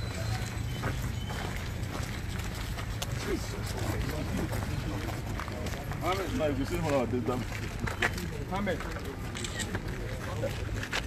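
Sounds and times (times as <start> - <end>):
people talking outdoors: 0.0 - 11.0.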